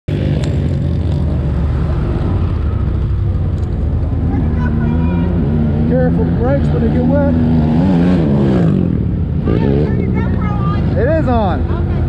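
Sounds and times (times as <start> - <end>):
man talking: 5.8 - 7.4, 10.9 - 11.6.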